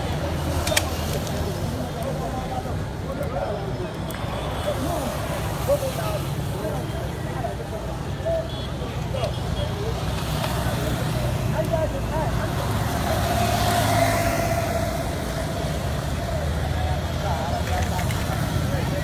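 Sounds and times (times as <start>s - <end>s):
street traffic rumble: 0.0s - 19.0s
vehicle passing: 9.8s - 19.0s.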